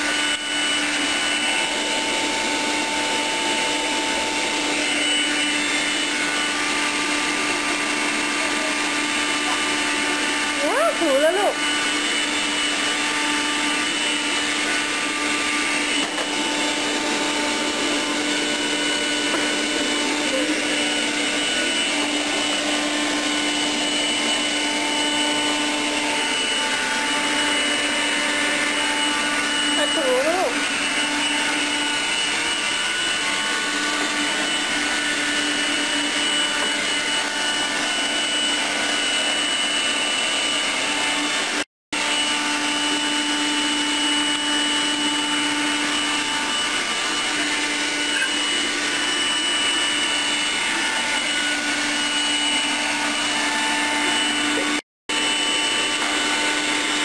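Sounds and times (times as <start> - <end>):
stick vacuum motor whine: 0.0 - 57.0.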